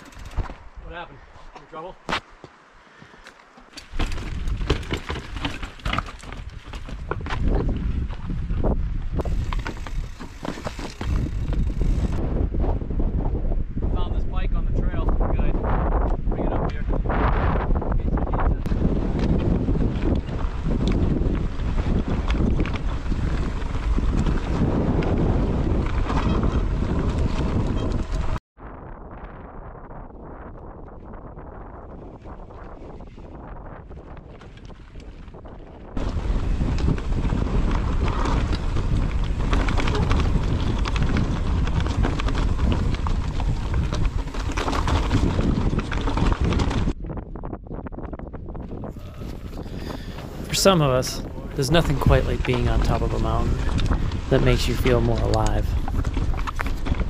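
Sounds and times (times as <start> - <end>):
bike rattling over rocks: 0.0 - 0.7, 3.6 - 12.2, 18.8 - 28.4, 32.2 - 47.0, 51.8 - 57.0
wind buffeting microphone: 3.8 - 57.0.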